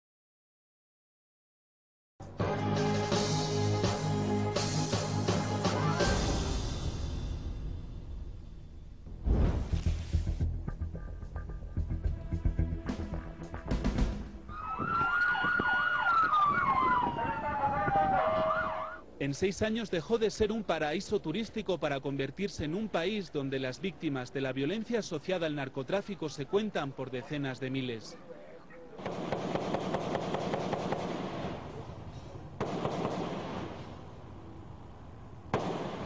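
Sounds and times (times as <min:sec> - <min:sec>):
loud bang: 0:06.5 - 0:10.0
siren steady falling tone: 0:14.5 - 0:19.0
siren yelping: 0:14.5 - 0:19.0
rapid gunfire: 0:29.0 - 0:31.6, 0:32.6 - 0:33.8, 0:35.5 - 0:36.0.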